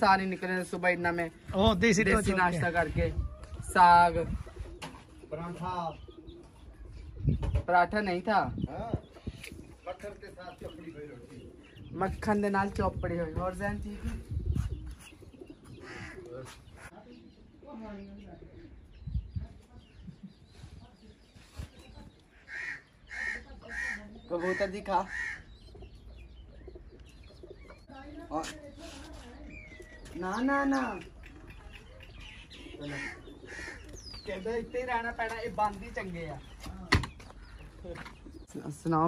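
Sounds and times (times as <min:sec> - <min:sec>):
pigeons cooing faintly: 0:00.0 - 0:39.0
high falling bird chirp: 0:04.3 - 0:07.7, 0:14.3 - 0:39.0.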